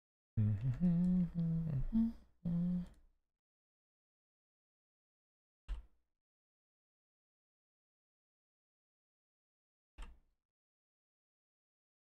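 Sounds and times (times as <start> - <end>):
man humming low notes: 0.4 - 2.9.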